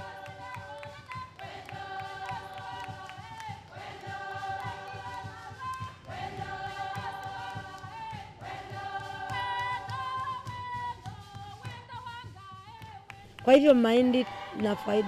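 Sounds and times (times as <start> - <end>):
choir singing long held notes: 0.0 - 11.4, 13.8 - 15.0
low pulsing beat: 0.0 - 15.0.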